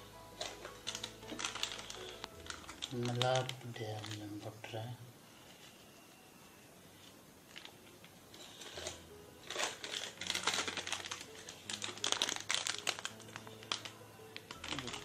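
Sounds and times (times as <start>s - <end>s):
plastic packet crinkling: 0.0s - 4.9s, 7.4s - 15.0s.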